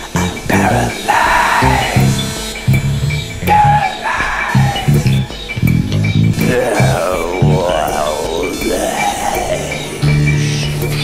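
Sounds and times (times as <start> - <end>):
jazz fusion band playing: 0.0 - 7.6
electric bass low notes: 0.0 - 8.5.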